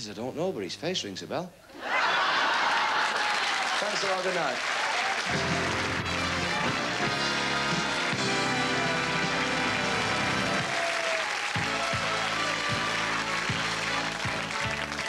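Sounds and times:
audience applauding: 1.9s - 15.0s.

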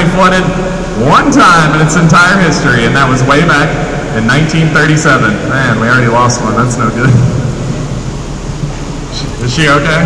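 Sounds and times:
amplified speech: 0.0s - 7.5s, 9.1s - 10.0s
low rumbling background noise: 0.0s - 10.0s.

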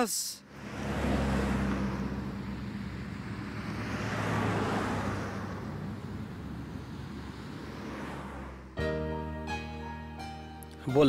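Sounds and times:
street traffic: 0.0s - 11.0s.

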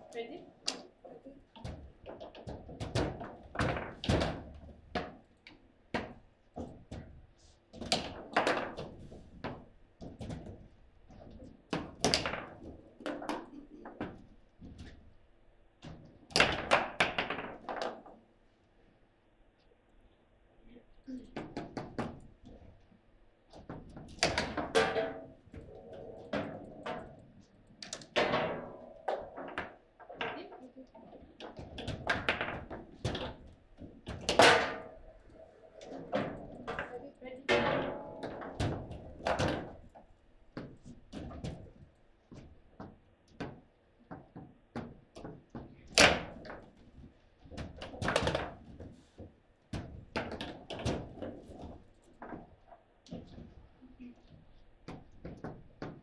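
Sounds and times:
table football knocks and thunks: 1.6s - 5.2s, 5.9s - 15.0s, 15.8s - 18.2s, 23.5s - 27.2s, 27.8s - 30.4s, 31.4s - 35.2s, 35.9s - 40.0s, 47.5s - 53.5s, 54.8s - 56.0s.

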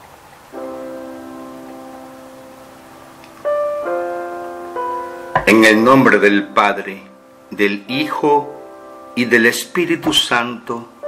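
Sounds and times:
sustained keyboard chord: 0.5s - 11.0s.

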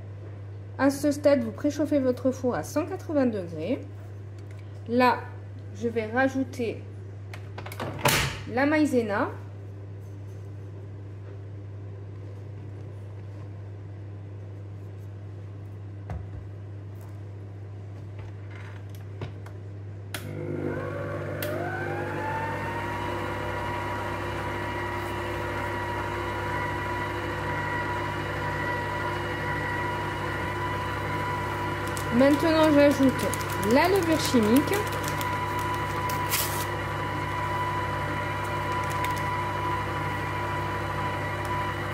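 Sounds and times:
stand mixer whisking batter: 20.3s - 41.9s.

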